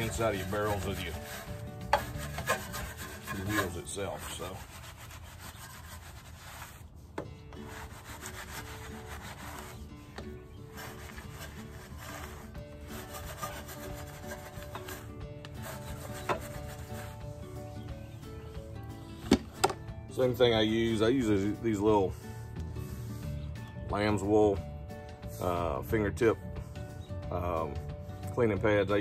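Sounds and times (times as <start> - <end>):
brush scrubbing wheel: 0.0 - 7.0, 7.6 - 9.9, 10.5 - 17.4.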